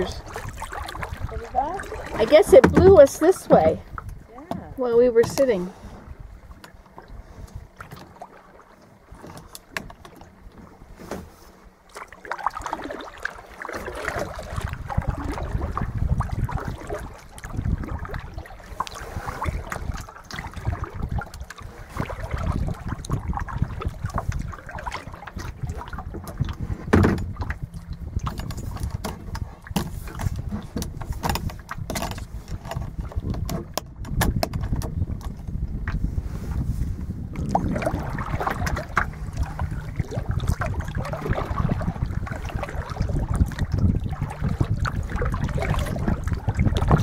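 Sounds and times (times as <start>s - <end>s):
small waves lapping against hull: 0.0s - 47.0s
wind rumbling on microphone: 0.0s - 47.0s.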